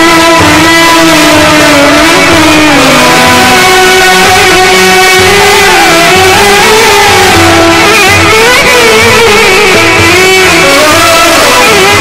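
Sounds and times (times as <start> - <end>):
goblet drum beat: 0.0 - 11.3
sliding melody line: 0.0 - 12.0.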